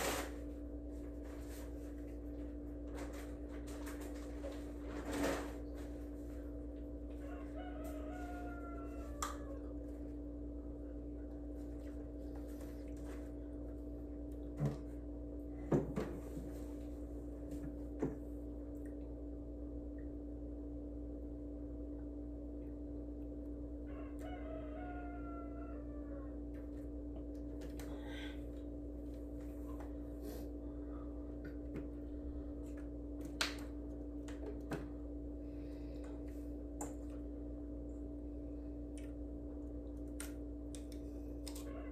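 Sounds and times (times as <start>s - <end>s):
constant low hum: 0.0s - 41.9s
faint drawn-out animal call: 23.8s - 26.8s.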